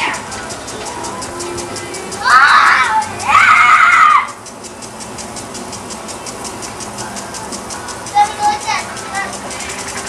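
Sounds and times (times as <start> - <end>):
fast even ticking: 0.0 - 10.0.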